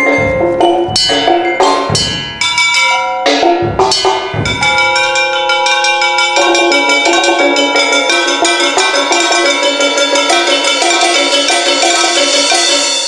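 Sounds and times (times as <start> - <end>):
percussion quartet playing pitched notes: 0.0 - 13.0.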